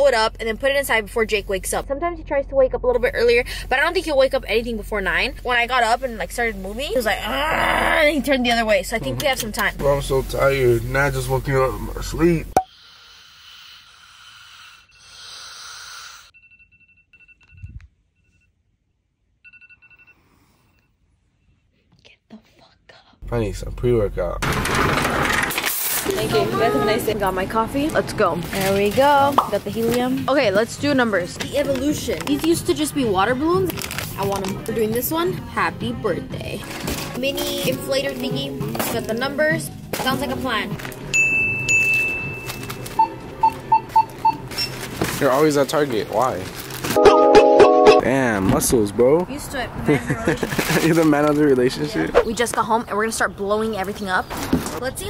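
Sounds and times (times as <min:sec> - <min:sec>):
phone alarm high beeps: 0:41.4 - 0:44.8.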